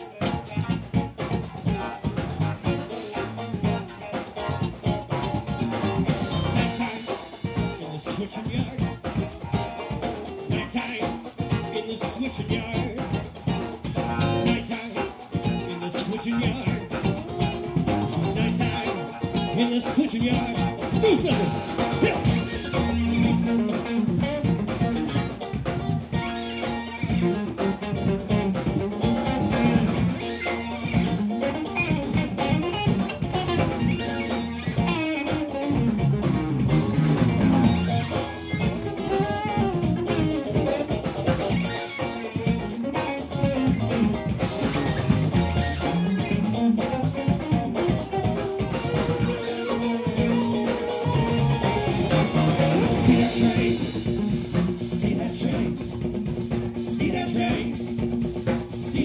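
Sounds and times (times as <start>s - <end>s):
bass guitar: 0.0s - 59.0s
drum kit: 0.0s - 59.0s
electric guitars: 0.0s - 59.0s
keyboard: 0.0s - 59.0s.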